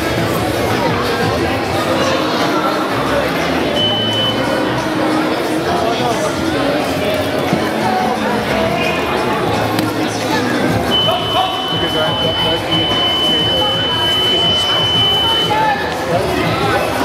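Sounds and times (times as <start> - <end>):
crowd chatter: 0.0 - 17.0
high electronic buzzer tone: 10.9 - 15.6.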